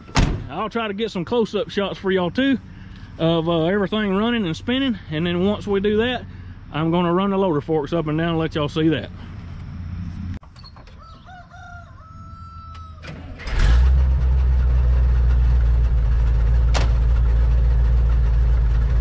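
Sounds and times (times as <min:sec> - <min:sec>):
truck engine starting and idling: 0:00.0 - 0:10.6, 0:12.8 - 0:19.0
rooster crowing: 0:10.9 - 0:13.1.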